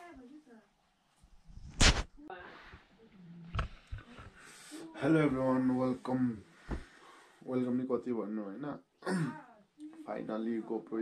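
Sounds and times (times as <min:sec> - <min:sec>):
soft breath: 0:03.8 - 0:05.0, 0:06.0 - 0:07.5.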